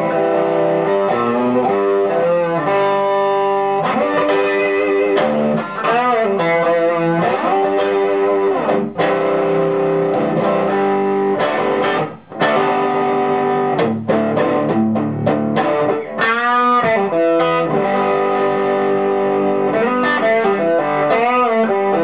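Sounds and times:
electric guitar chords: 0:00.0 - 0:22.0
guitar string bend: 0:00.0 - 0:22.0.

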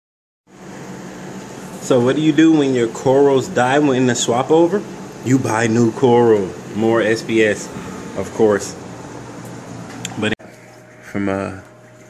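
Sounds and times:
man speaking: 0:01.8 - 0:08.8, 0:11.1 - 0:11.7.

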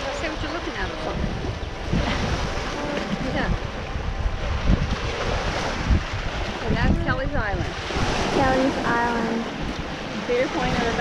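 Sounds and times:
waves breaking on rocky shore: 0:00.0 - 0:11.0
wind buffeting microphone: 0:00.0 - 0:11.0.

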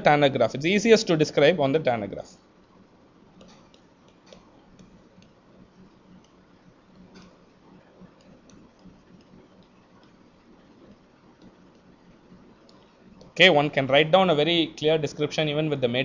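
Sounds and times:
low steady hum: 0:00.0 - 0:16.0
stylus tapping on tablet screen: 0:02.6 - 0:13.4.

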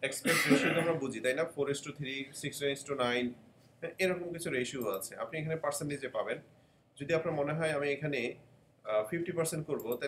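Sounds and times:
person speaking: 0:00.0 - 0:10.0
person clearing throat: 0:00.2 - 0:01.0.

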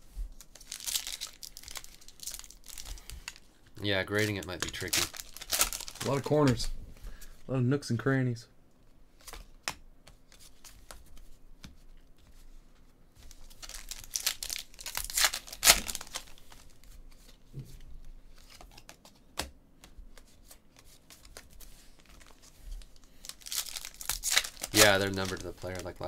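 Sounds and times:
foil wrapper crinkling and tearing: 0:00.4 - 0:03.5, 0:04.1 - 0:06.6, 0:13.3 - 0:16.8, 0:22.0 - 0:26.0
cards being shuffled: 0:18.3 - 0:26.0.

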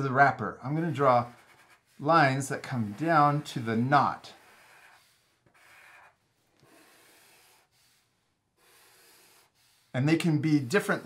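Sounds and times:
marker strokes on paper: 0:00.8 - 0:11.0.

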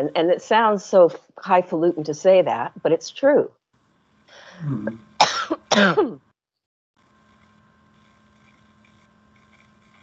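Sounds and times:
person coughing: 0:04.6 - 0:06.2.

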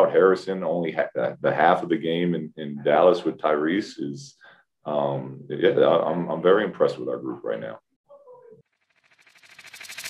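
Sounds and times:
faint voice: 0:08.1 - 0:08.6
rising whoosh with flutter: 0:08.8 - 0:10.0.

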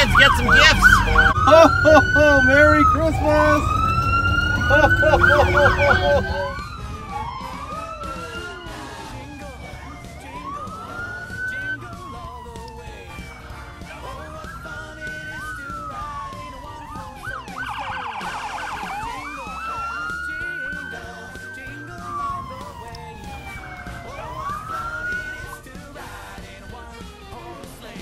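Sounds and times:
police sirens wailing: 0:00.0 - 0:28.0.

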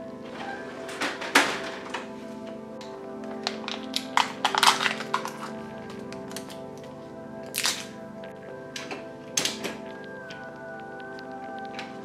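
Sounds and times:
background music: 0:00.0 - 0:12.0
plastic packaging crinkling: 0:03.4 - 0:08.0.

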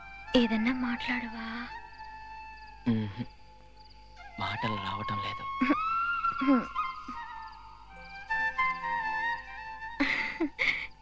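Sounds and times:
film background music: 0:00.0 - 0:11.0.

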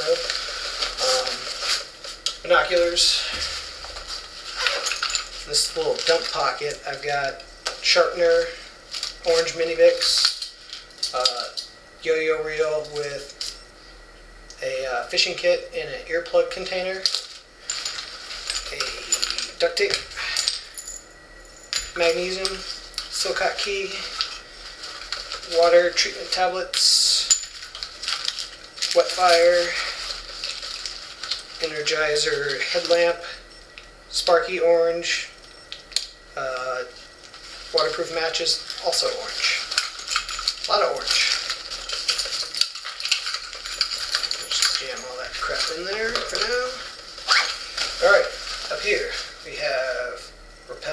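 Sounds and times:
gear and plastic packets rustling: 0:00.0 - 0:11.6, 0:16.3 - 0:21.0, 0:21.7 - 0:33.6, 0:35.4 - 0:50.2.

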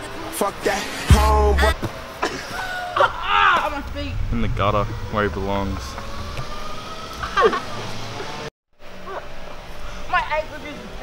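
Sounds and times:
low outdoor rumble: 0:00.6 - 0:11.0.

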